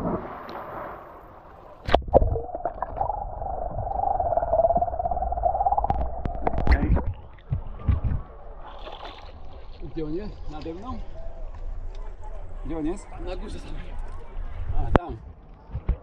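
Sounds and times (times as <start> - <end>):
bubbles gurgling and clicking: 1.8 - 8.3
splash into water: 8.0 - 9.8.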